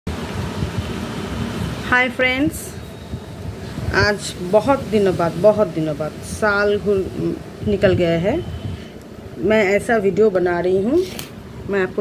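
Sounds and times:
low rumble and hiss: 0.1s - 12.0s.

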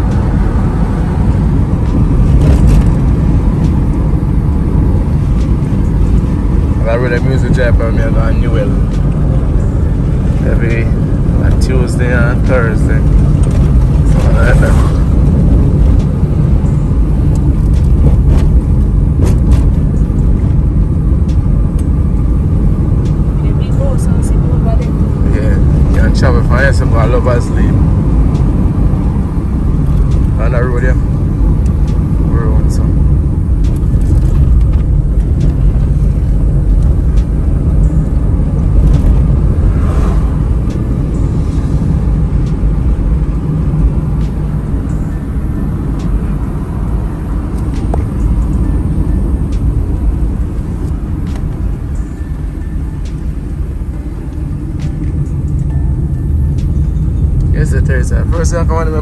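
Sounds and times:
car engine and tyre rumble: 0.0s - 59.0s.

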